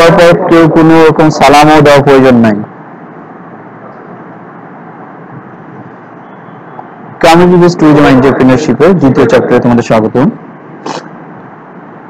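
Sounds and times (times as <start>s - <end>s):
constant even hiss: 0.0s - 12.0s.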